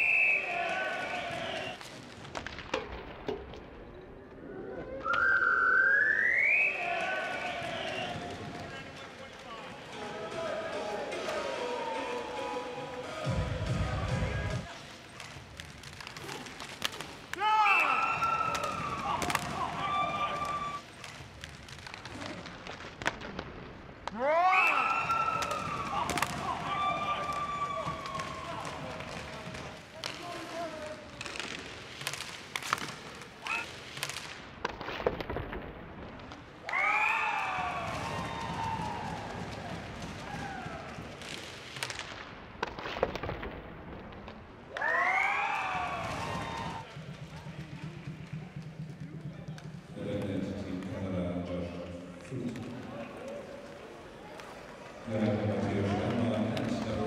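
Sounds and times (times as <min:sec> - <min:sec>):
voices calling out in arena: 0:00.0 - 0:01.8, 0:04.3 - 0:15.0, 0:17.3 - 0:20.8, 0:24.1 - 0:31.3, 0:33.4 - 0:33.7
clacks of sticks and puck: 0:00.7 - 0:03.8, 0:07.2 - 0:10.0, 0:14.7 - 0:36.9, 0:37.9 - 0:45.0, 0:52.1 - 0:57.0.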